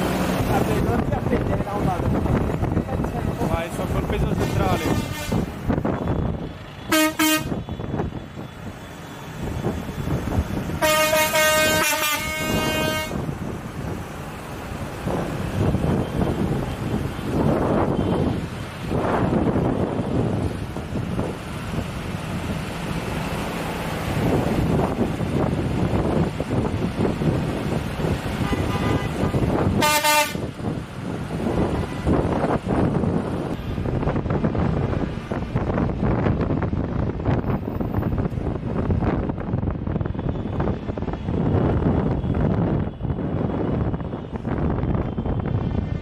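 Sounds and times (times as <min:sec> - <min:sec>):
diesel tractor engines running: 0:00.0 - 0:46.0
tractor horns honking: 0:04.4 - 0:05.6, 0:06.7 - 0:07.9, 0:10.8 - 0:13.2, 0:28.4 - 0:30.6.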